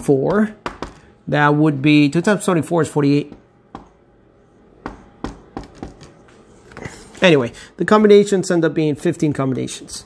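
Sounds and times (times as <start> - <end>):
marker tapping on whiteboard: 0.2 - 1.1, 3.3 - 4.0, 4.8 - 6.2.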